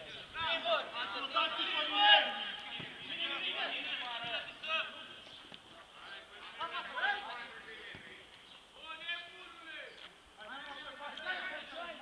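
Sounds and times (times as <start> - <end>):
distant voices calling out: 0.0 - 12.0.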